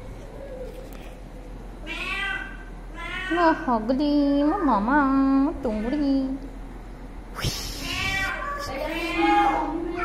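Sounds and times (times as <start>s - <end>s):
cat meowing: 1.8s - 3.6s, 7.8s - 10.0s.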